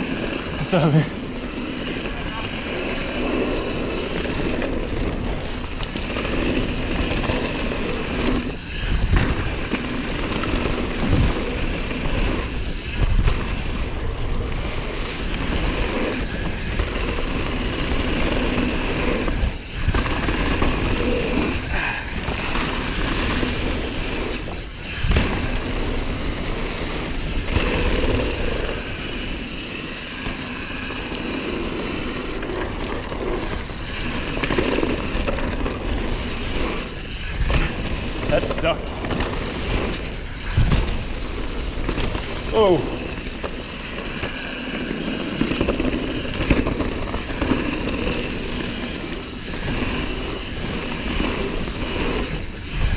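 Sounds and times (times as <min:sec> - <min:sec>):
bike tyres rolling over dirt: 0:00.0 - 0:52.9.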